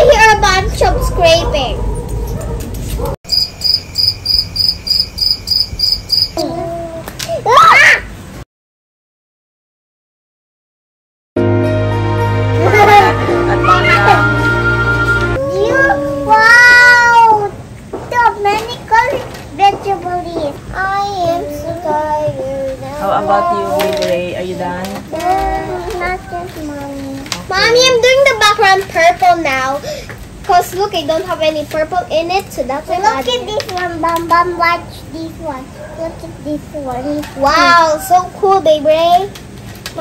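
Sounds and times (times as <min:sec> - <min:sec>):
crickets chirping: 0:03.3 - 0:06.4
girl singing wordless tune: 0:19.8 - 0:23.8, 0:25.2 - 0:27.9.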